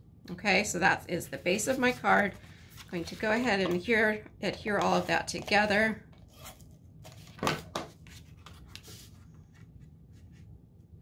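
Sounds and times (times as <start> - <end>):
soft paper rubbing: 1.3 - 3.6, 8.0 - 10.6.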